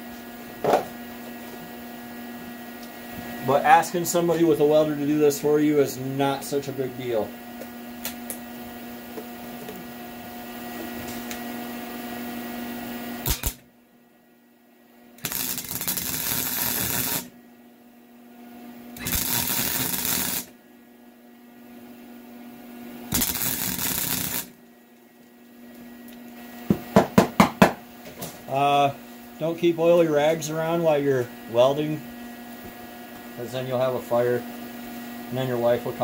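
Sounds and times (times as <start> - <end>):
steady hum: 0.0 - 36.0
welder arcing crackle: 13.2 - 13.6, 15.2 - 17.3, 19.0 - 20.5, 23.1 - 24.6.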